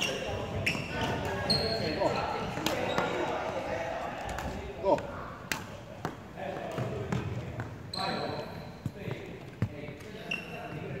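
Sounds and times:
shoe soles squeaking: 0.0 - 3.6, 7.7 - 11.0.

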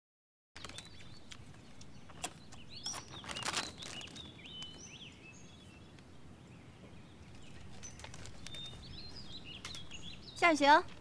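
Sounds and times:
plastic snack bag crinkling: 0.6 - 1.4, 2.2 - 4.8, 7.4 - 8.9
small birds chirping: 0.6 - 11.0.

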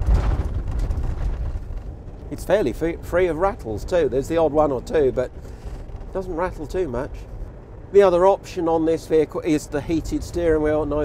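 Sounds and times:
road and engine rumble in vehicle cabin: 0.0 - 11.0.

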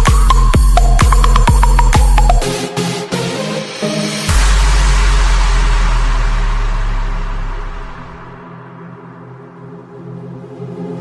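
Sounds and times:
deep sub-bass boom: 4.3 - 8.9.

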